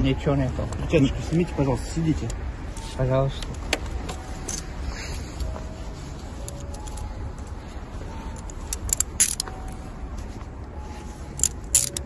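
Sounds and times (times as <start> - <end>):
street low rumble: 0.0 - 12.0
sharp jingling clicks: 6.2 - 7.6, 8.2 - 9.8, 11.3 - 12.0.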